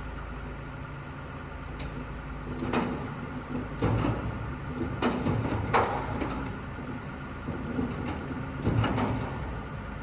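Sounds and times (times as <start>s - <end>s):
truck diesel engine idling: 0.0s - 10.0s.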